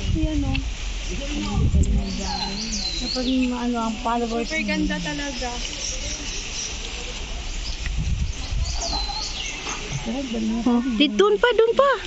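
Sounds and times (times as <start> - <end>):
insects hissing: 0.0 - 12.0.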